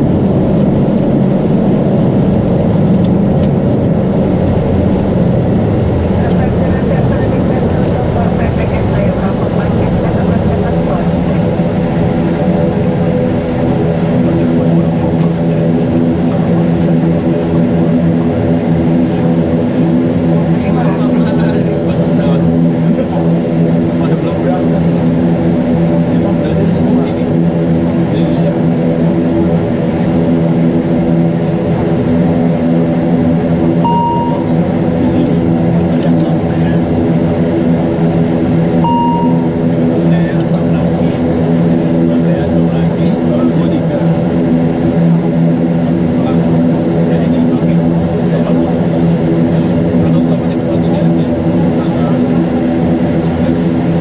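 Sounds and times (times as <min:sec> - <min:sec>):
turboprop engines droning: 0:00.0 - 0:54.0
short electronic beeps: 0:33.8 - 0:34.6, 0:38.8 - 0:39.5.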